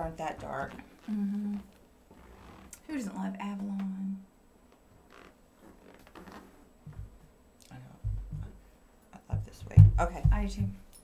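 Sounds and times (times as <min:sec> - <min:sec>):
leather chair creaking: 0:00.4 - 0:02.8, 0:04.7 - 0:06.7.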